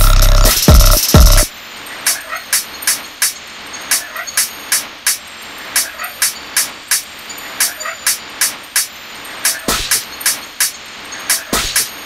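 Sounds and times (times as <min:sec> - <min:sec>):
sharp drum hits: 0:00.0 - 0:01.5
distorted noisy haze: 0:00.0 - 0:12.0.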